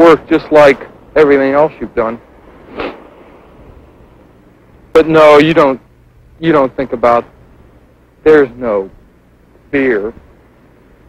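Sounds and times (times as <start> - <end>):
man speaking: 0.0 - 2.2, 4.9 - 7.3, 8.2 - 9.0, 9.7 - 10.2
background hiss with low hum: 0.0 - 11.0.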